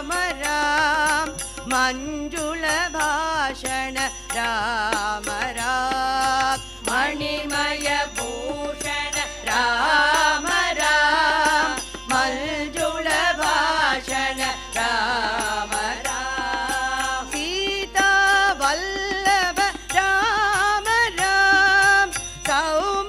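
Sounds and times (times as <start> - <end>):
harmonium: 0.0 - 23.0
tabla strokes: 0.0 - 23.0
women's choir singing in unison: 6.2 - 18.8.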